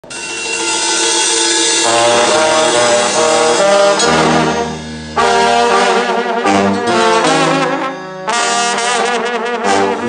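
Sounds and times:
trombones playing held notes: 0.0 - 10.0.

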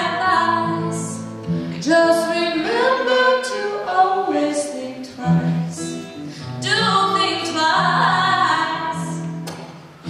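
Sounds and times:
woman singing: 0.0 - 9.3
strummed acoustic guitar: 0.0 - 10.0.

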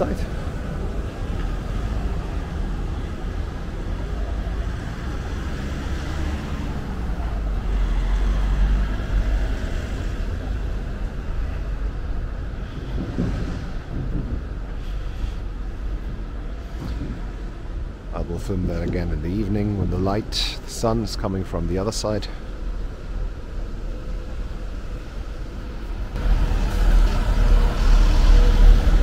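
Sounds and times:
city street noise: 0.0 - 29.0.

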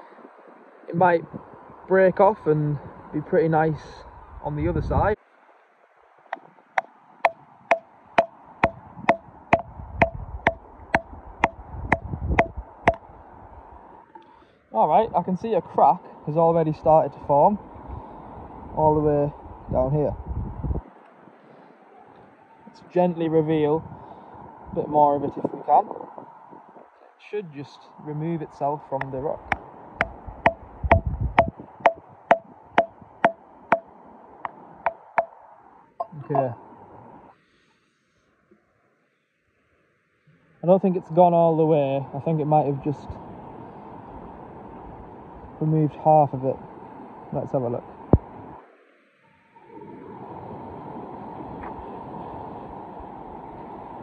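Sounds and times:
hammer striking steel chisel: 7.2 - 13.0, 30.0 - 33.8.

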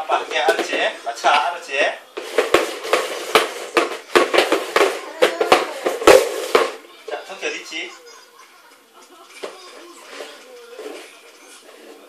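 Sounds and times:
plastic bowls sliding on wooden floor: 2.2 - 6.8, 9.9 - 12.0.

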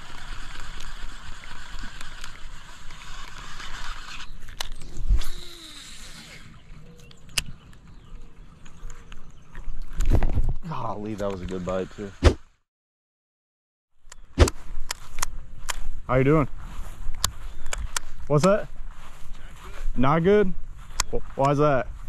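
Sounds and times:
fishing line whirring off reel: 0.0 - 7.5.

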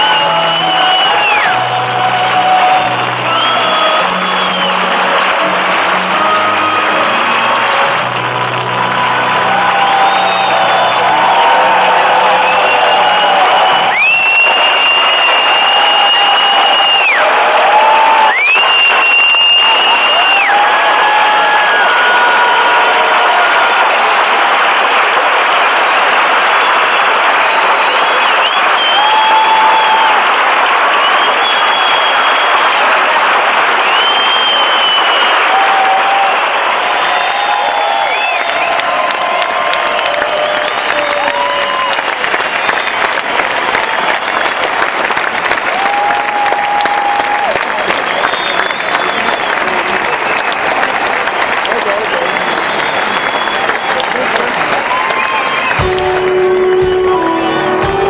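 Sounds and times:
shrill whistles: 0.0 - 1.7, 3.2 - 5.0, 9.8 - 17.3, 18.2 - 20.8, 26.6 - 30.2, 30.9 - 32.9, 33.8 - 44.8, 45.8 - 50.8, 51.8 - 57.6
audience applauding and cheering: 0.0 - 58.0
shouts: 8.4 - 24.5, 28.8 - 30.3, 34.3 - 44.6, 45.5 - 58.0.

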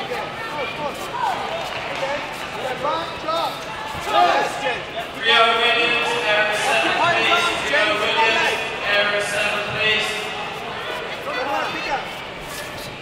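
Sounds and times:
people shouting: 3.7 - 9.3, 10.3 - 12.2.

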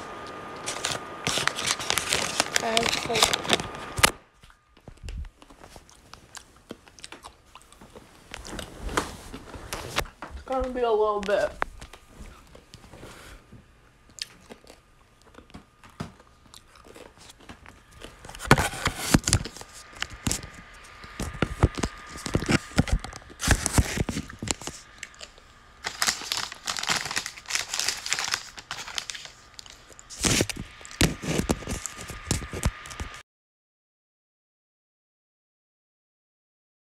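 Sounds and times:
faint high whine: 0.0 - 5.4
rustling and clicking handling noise: 0.6 - 13.0, 16.9 - 33.2.

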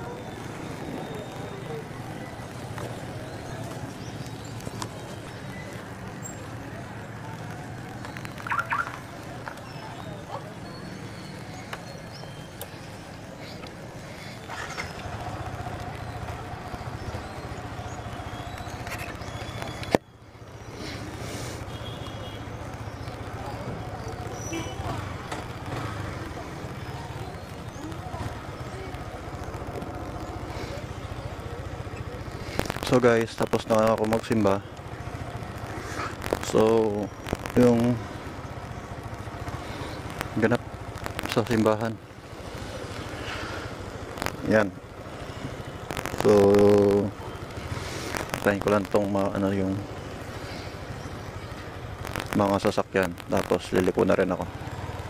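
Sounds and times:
motorcycle engine at low revs: 10.5 - 55.0.

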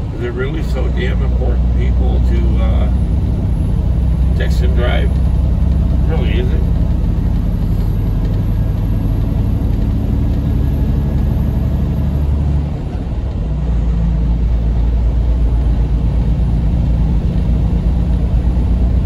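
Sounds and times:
diesel truck engine drone: 0.0 - 19.0
road noise: 0.0 - 19.0.

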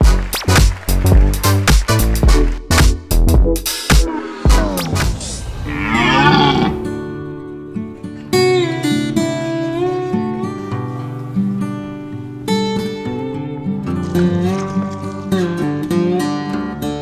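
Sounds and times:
deer stag roaring: 5.5 - 7.0
acoustic guitar music: 6.8 - 17.0.

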